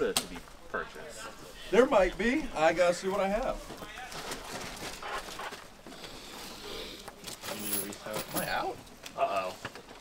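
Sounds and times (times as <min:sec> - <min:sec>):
bags rustling: 0:03.4 - 0:06.5.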